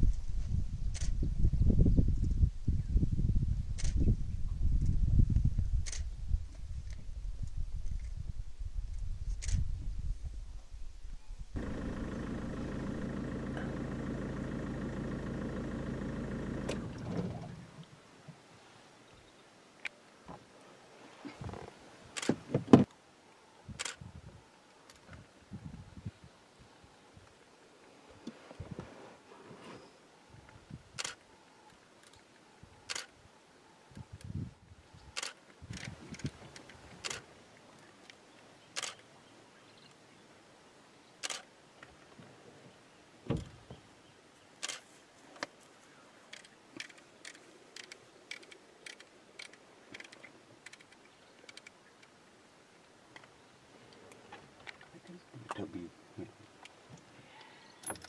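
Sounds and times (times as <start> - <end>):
sharp clicks: 3.8 - 4.1, 5.8 - 6.1, 23.8 - 24.0, 31.0 - 31.2, 32.9 - 33.1, 35.2 - 37.2, 38.8 - 39.0, 41.2 - 41.5, 44.6 - 44.8, 46.3 - 52.1
vehicle engine idling: 11.6 - 17.5
low uneven rumbling: 11.6 - 18.0.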